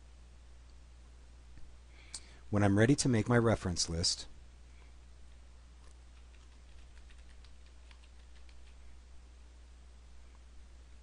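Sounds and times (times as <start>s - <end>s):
low steady hum: 0.0s - 11.0s
computer keyboard key clicks: 6.2s - 8.8s.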